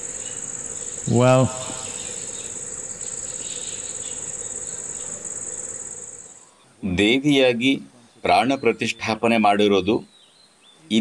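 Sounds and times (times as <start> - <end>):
crickets trilling: 0.0 - 6.6.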